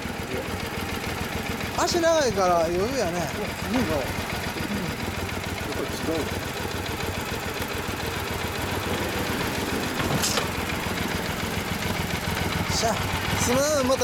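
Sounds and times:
motorcycle engine idling: 0:00.0 - 0:14.0.

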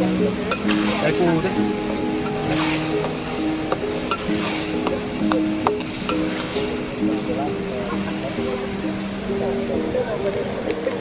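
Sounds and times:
meat sizzling in a wok: 0:00.0 - 0:10.7
tune of held notes: 0:00.0 - 0:11.0
metal spatula scraping a pan: 0:00.4 - 0:01.2, 0:02.2 - 0:08.4.

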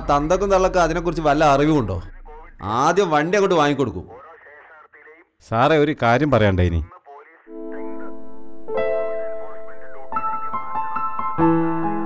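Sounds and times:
man talking: 0:00.0 - 0:08.2, 0:09.2 - 0:10.2
voice over a telephone: 0:01.7 - 0:08.1, 0:09.4 - 0:10.1.

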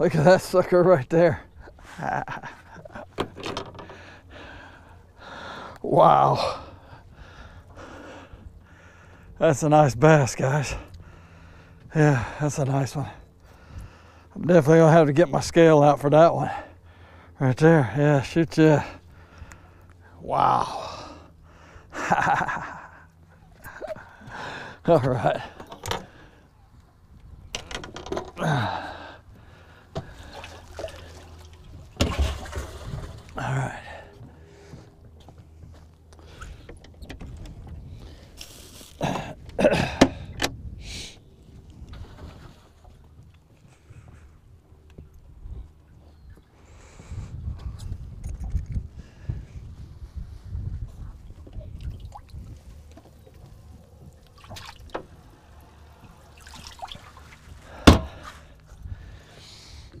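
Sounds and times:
water splashing: 0:30.0 - 0:33.4, 0:54.2 - 0:57.8.

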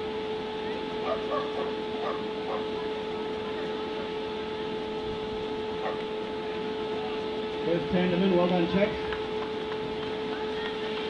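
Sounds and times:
high-pitched hum: 0:00.0 - 0:11.0.

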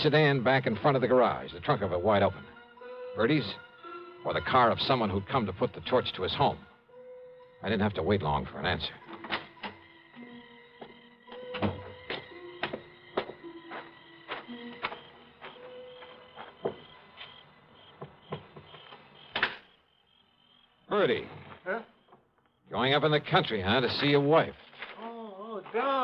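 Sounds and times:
irregular clicks and knocks: 0:09.0 - 0:19.7.

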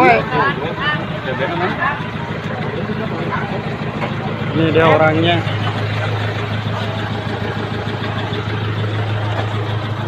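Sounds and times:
noisy background: 0:00.0 - 0:10.0
vehicle engine idling: 0:00.0 - 0:10.0.

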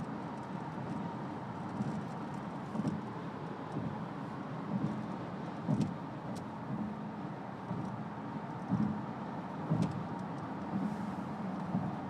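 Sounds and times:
road and engine noise inside car: 0:00.0 - 0:12.0.

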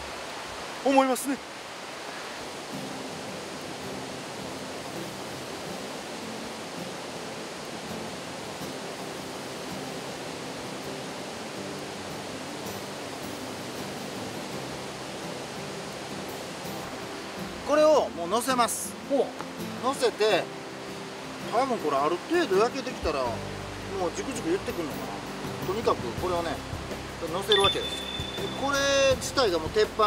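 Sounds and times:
river rushing: 0:00.0 - 0:30.0.

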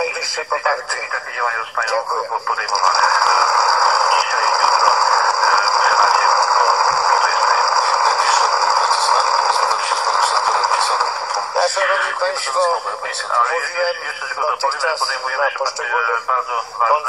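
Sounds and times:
radio hiss: 0:00.0 - 0:17.0
voice over radio: 0:00.0 - 0:17.0
high radio whistles: 0:02.6 - 0:12.9.

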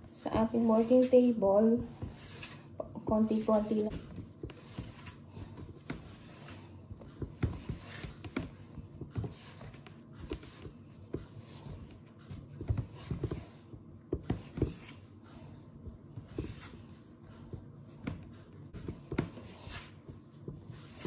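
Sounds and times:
dough kneaded on wooden board: 0:00.0 - 0:21.0.

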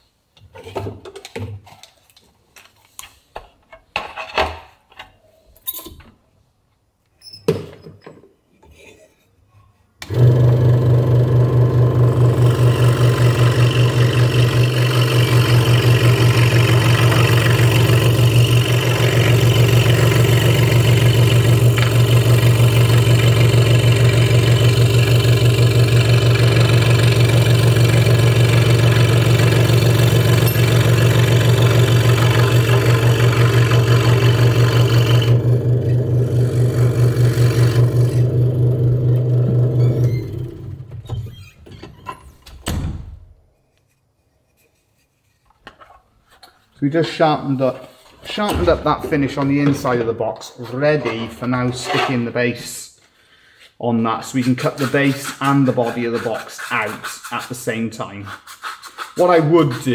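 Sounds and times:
scroll saw running: 0:10.1 - 0:40.8
blade rasping through wood: 0:12.6 - 0:27.1, 0:54.4 - 0:57.6, 0:58.2 - 0:59.9.

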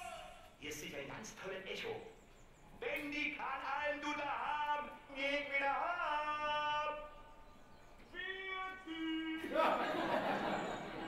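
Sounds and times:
person singing over speakers: 0:02.8 - 0:07.4, 0:08.0 - 0:09.7.

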